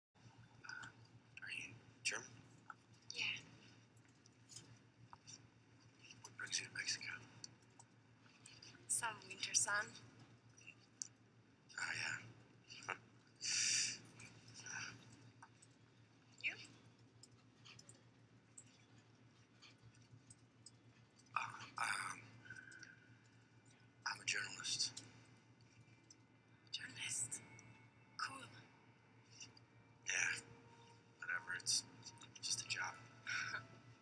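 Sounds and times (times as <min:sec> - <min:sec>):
low steady hum: 0:00.2 - 0:34.0.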